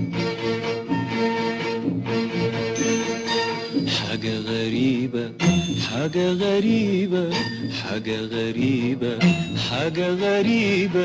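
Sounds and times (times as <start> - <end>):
film song melody: 0.0 - 11.0.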